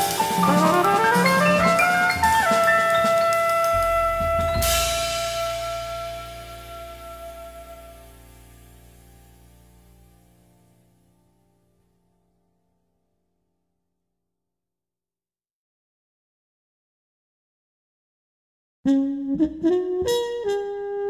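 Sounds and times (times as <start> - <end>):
acoustic jazz band playing: 0.0 - 9.2
cymbal crash: 0.0 - 10.1.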